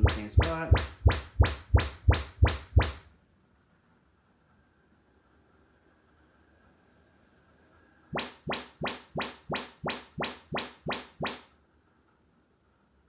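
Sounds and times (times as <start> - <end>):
quick rising test sweeps: 0.0 - 3.0, 8.2 - 11.4.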